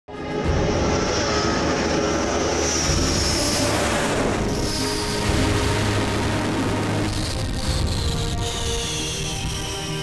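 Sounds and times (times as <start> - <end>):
background music: 0.1 - 10.0
jet engine roar with turbine whine: 0.1 - 10.0.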